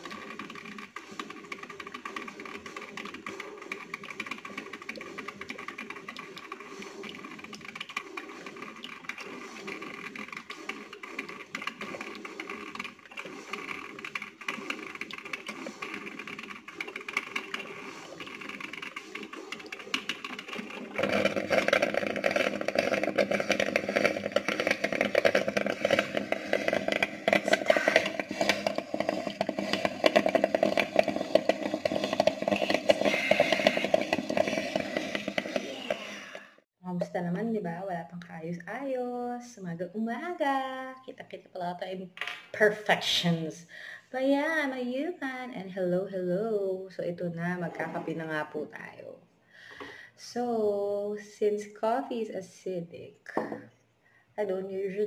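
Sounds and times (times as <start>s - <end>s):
coffee maker hissing and sputtering: 0.0s - 36.7s.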